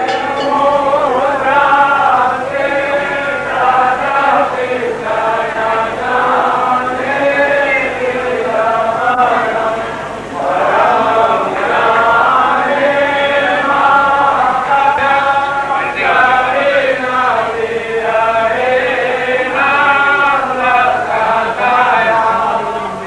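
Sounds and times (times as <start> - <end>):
group singing a chant: 0.0 - 23.0.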